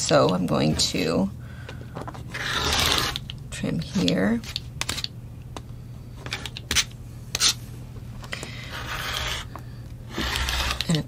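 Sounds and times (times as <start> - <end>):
rotary cutter rasping through fabric: 2.3 - 3.2, 8.7 - 9.5, 10.1 - 11.0.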